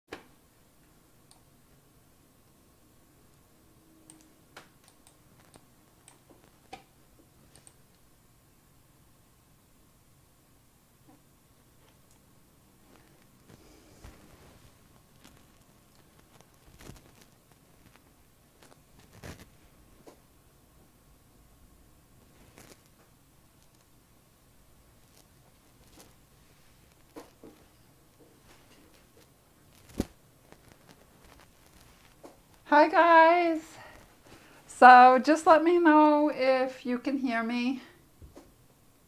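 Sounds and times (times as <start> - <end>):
faint steady hum: 0.1 - 39.0
faint clicks and taps: 4.1 - 8.0, 22.3 - 23.9.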